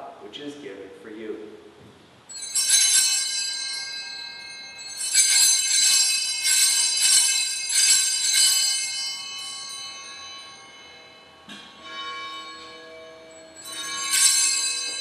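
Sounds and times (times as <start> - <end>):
small hand bells ringing: 2.3 - 15.0.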